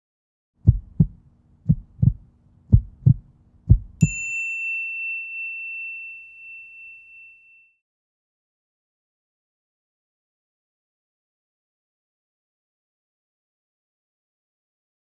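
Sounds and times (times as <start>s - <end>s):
low heartbeat-like thumps: 0.6s - 4.1s
bright ringing chime: 4.0s - 7.8s.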